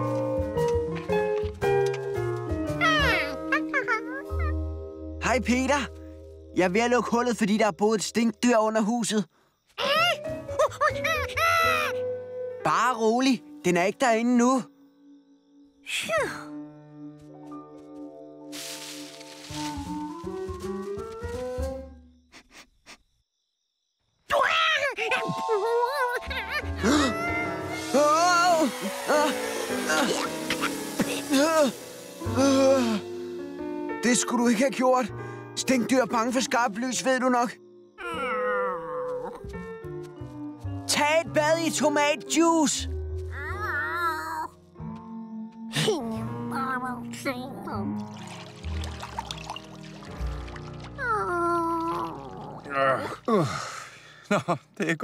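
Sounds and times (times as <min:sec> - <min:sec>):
cartoon background music: 0:00.0 - 0:05.9, 0:09.8 - 0:14.8, 0:24.3 - 0:53.2
high-pitched cartoon animal cries: 0:25.5 - 0:27.8, 0:38.0 - 0:39.4.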